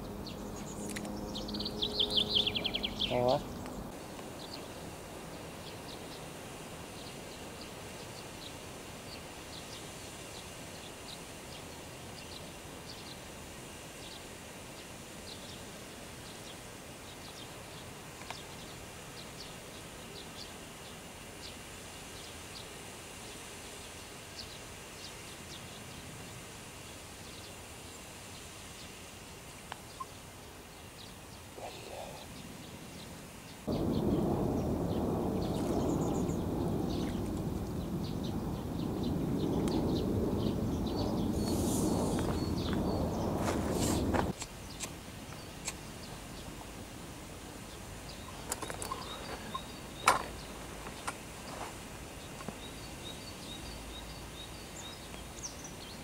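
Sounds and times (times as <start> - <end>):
steady low hiss: 0.0 - 56.0
loud low rushing noise: 33.7 - 44.4.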